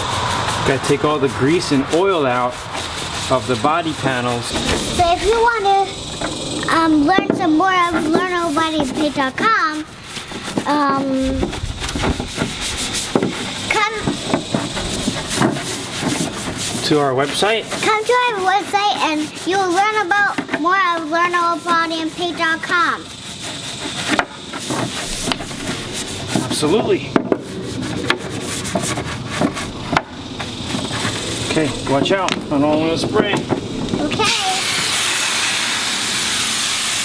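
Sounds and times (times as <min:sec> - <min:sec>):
brush scrubbing wet plastic: 0:00.0 - 0:37.0.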